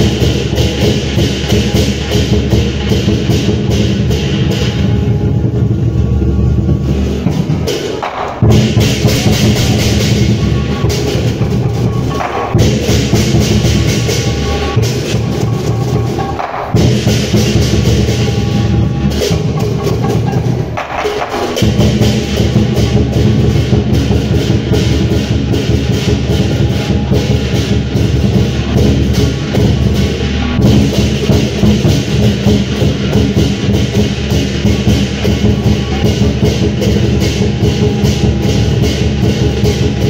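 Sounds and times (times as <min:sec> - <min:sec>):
big drum beaten fast: 0:00.0 - 0:40.0
clashing cymbals: 0:00.0 - 0:40.0.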